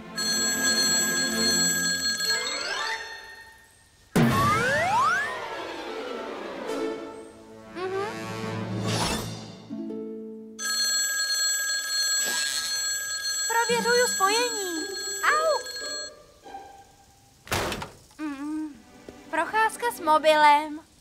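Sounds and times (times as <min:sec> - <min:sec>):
mobile phone ringing: 0:00.2 - 0:03.6, 0:10.6 - 0:16.2.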